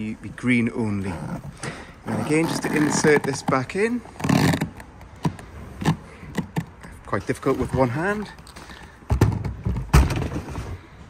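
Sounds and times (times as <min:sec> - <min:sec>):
plastic tank knocking and scraping: 0:09.1 - 0:10.7.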